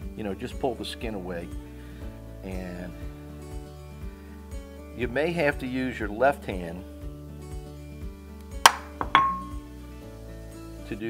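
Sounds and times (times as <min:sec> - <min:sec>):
background music: 0:00.0 - 0:11.0
utensil knocking ceramic bowl: 0:08.7 - 0:09.6.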